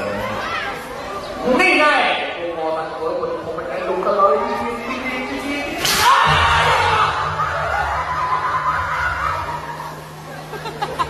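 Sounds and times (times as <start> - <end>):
person laughing quietly: 10.3 - 11.0.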